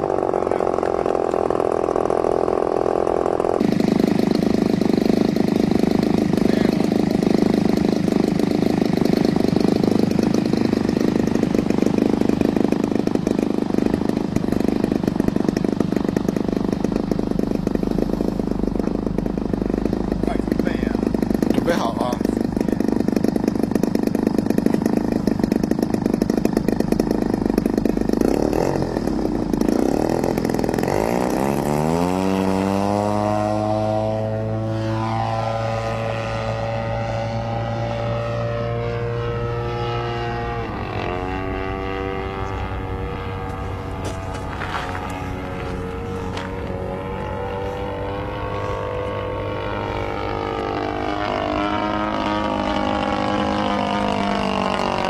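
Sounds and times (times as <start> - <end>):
model airplane engine running: 0.0 - 55.0.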